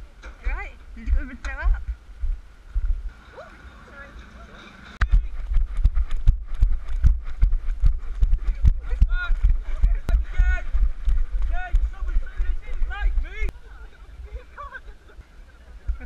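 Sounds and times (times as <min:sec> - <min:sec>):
low rumble: 0:00.0 - 0:03.2, 0:05.0 - 0:14.5
runners' vocal sounds: 0:05.2 - 0:14.4.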